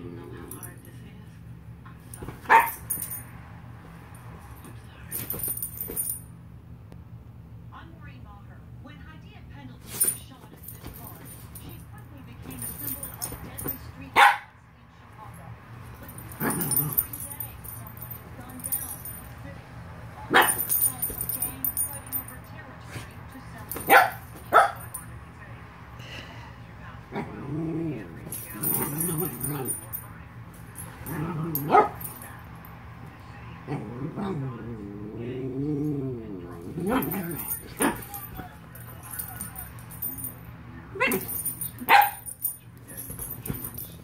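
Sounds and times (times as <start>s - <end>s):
dogs play growling: 0.0s - 1.0s, 15.9s - 19.2s, 27.0s - 32.4s, 33.5s - 40.3s
dogs play-fighting: 0.0s - 6.2s, 9.8s - 14.4s, 15.8s - 19.4s, 20.3s - 25.1s, 26.0s - 44.0s
collar tags jingling: 0.2s - 1.2s, 1.9s - 6.4s, 9.8s - 14.4s, 15.2s - 25.3s, 27.5s - 32.9s, 36.5s - 44.0s
dog barking: 2.4s - 2.9s, 14.1s - 14.6s, 20.3s - 20.8s, 23.8s - 24.9s, 31.3s - 32.1s, 41.0s - 42.3s
dog barking sharply: 2.5s - 2.8s.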